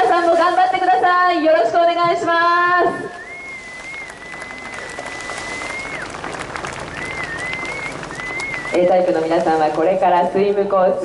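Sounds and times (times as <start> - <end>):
crowd applauding: 3.1 - 10.0.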